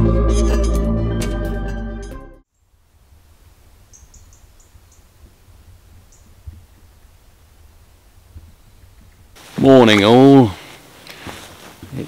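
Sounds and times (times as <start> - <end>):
ambient music: 0.0 - 2.4
low steady rumble: 2.6 - 9.4
small bird chirping: 3.8 - 5.3, 5.9 - 7.3, 8.0 - 9.3.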